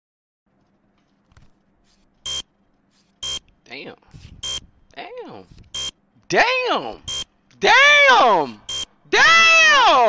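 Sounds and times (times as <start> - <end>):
electronic buzzer beeps: 2.2 - 2.5, 3.2 - 3.4, 4.4 - 4.7, 5.7 - 6.0, 7.0 - 7.3, 8.6 - 9.0.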